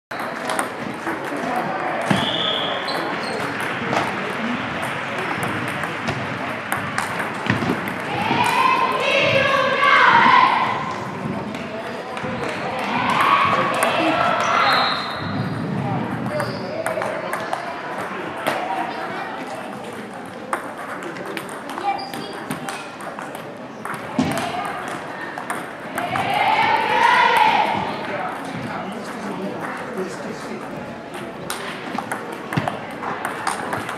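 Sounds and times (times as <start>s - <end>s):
voices in sports hall: 0.1s - 33.9s
table tennis balls clicking: 0.2s - 2.2s, 4.8s - 8.8s, 16.2s - 18.6s, 19.7s - 26.3s, 29.6s - 33.9s.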